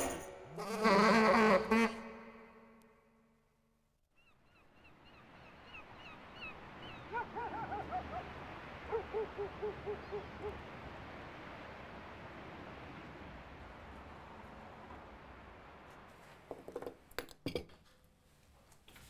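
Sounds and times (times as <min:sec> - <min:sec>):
outdoor background noise: 0:00.0 - 0:19.0
gulls calling: 0:04.2 - 0:11.1.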